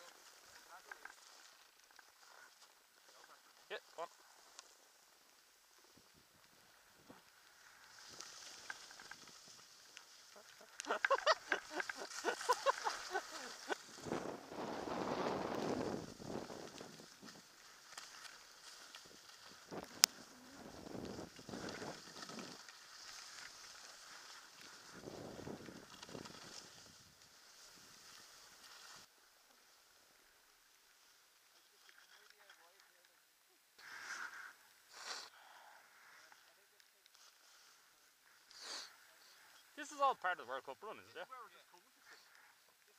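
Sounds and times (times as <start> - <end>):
skis scraping over snow: 0.0 - 30.0
wind on microphone: 13.7 - 17.4, 19.6 - 22.6.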